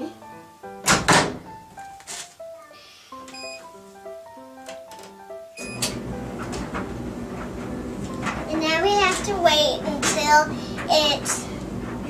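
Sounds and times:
background music: 0.0 - 11.4
dryer door thunk: 0.8 - 1.6
short high beeps: 3.3 - 3.7.

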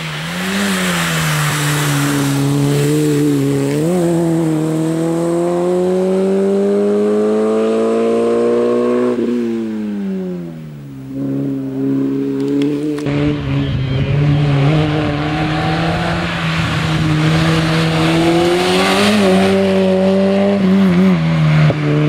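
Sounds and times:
car engine racing at high revs: 0.0 - 22.0.

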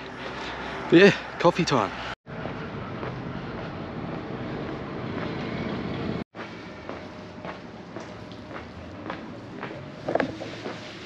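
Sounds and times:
distant traffic rushing: 0.0 - 11.0.

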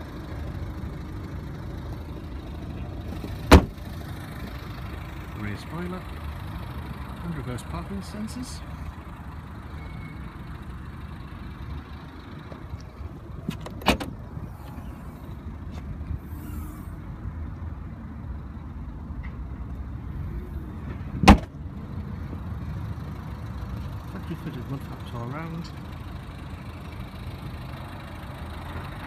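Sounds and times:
diesel engine idling: 0.0 - 29.0
tailgate opening knock: 3.1 - 3.8, 13.4 - 14.2, 21.2 - 21.5
tailgate slamming shut: 3.1 - 3.9, 13.4 - 15.1, 21.2 - 21.6.

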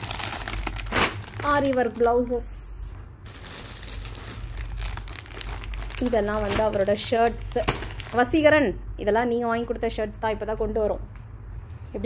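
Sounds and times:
plastic bags crinkling: 0.0 - 2.4, 3.2 - 8.4.

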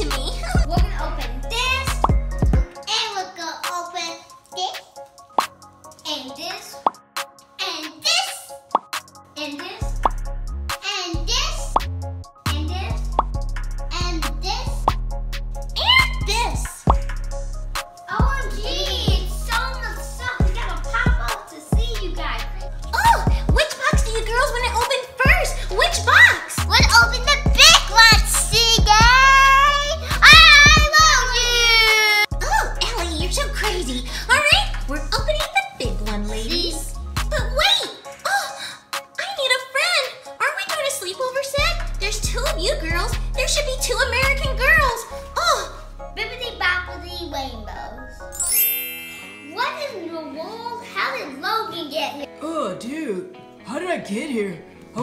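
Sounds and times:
background music: 0.0 - 55.0
girl squealing: 15.8 - 16.4, 22.9 - 23.4, 28.8 - 32.7.

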